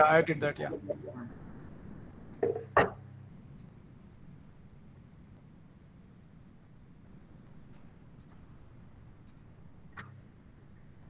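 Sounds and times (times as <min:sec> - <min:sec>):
low steady hiss: 0:00.0 - 0:11.0
computer mouse clicks: 0:07.7 - 0:08.5, 0:09.2 - 0:10.2.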